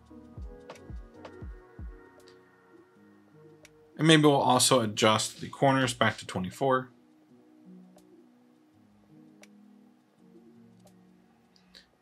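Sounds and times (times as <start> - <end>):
faint chillhop chords: 0.0 - 12.0.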